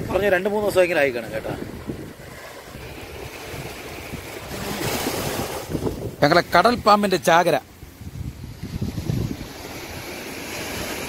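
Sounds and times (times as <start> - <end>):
surf washing onto beach: 0.0 - 11.0
wind on microphone: 0.0 - 11.0.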